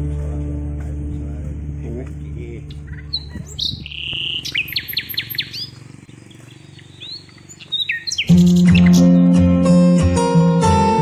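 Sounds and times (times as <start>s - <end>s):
small birds chirping: 2.3s - 9.4s
strummed acoustic guitar music: 7.3s - 11.0s.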